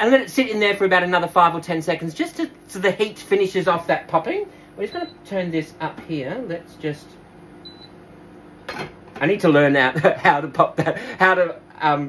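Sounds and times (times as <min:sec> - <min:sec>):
faint appliance hum: 0:00.0 - 0:12.0.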